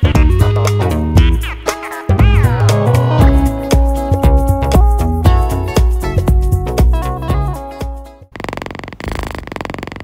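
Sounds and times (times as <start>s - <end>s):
music: 0.0s - 8.3s
cat purring: 8.3s - 10.0s.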